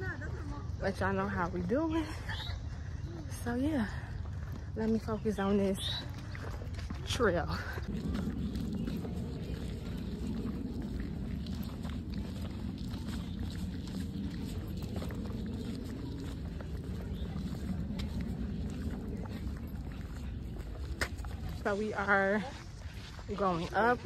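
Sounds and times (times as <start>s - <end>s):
steady low rumble: 0.0s - 24.0s.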